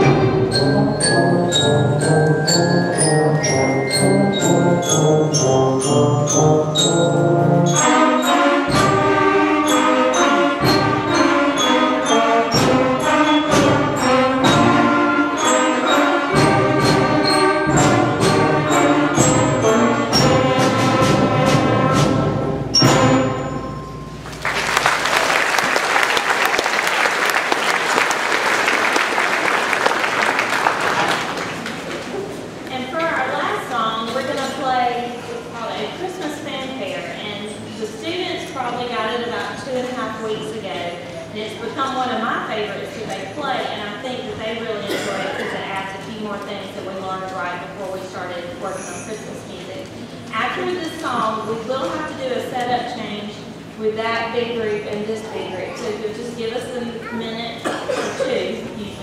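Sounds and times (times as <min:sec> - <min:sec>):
sharp percussion strokes: 0:00.0 - 0:24.8
concert band playing: 0:00.0 - 0:32.6
audience applause: 0:24.3 - 0:32.4.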